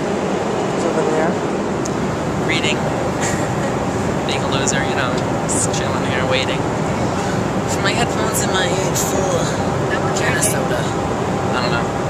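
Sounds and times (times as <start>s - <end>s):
airliner cabin noise: 0.0s - 12.0s.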